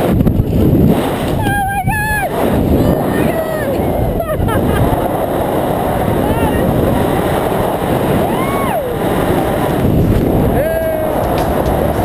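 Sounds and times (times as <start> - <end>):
wind buffeting microphone: 0.0 - 12.0
person calling out: 1.4 - 4.5
person whooping: 1.4 - 5.3, 6.0 - 7.0, 8.1 - 9.2.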